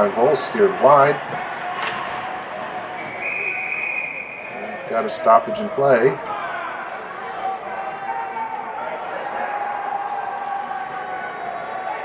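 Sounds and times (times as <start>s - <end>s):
ice rink background noise: 0.0s - 12.0s
referee's whistle blast: 3.0s - 4.8s.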